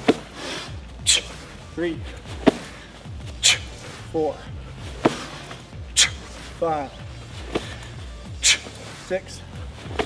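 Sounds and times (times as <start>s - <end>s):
sandbag thump: 0.0s - 0.4s, 2.3s - 3.7s, 4.8s - 6.3s, 7.4s - 7.9s
music with a steady beat: 0.0s - 10.0s.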